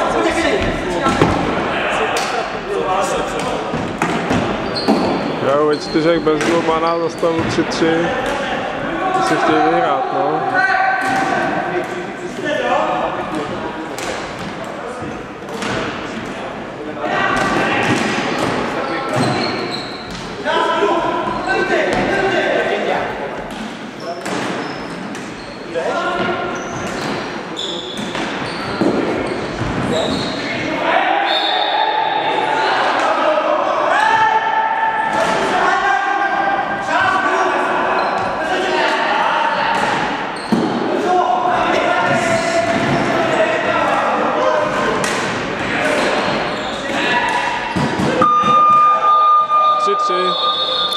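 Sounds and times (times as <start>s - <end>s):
steady high tone: 48.2s - 50.9s.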